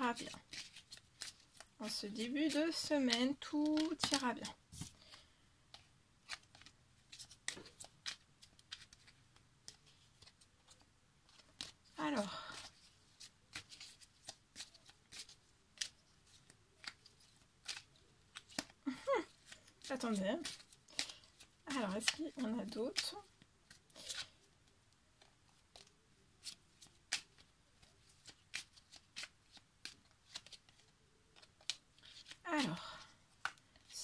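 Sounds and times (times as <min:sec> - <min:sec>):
cards being shuffled: 0:00.1 - 0:34.0.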